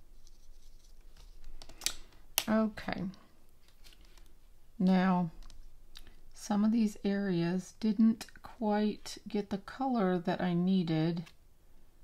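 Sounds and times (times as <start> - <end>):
paintbrush rustling on paper: 0.0 - 1.5.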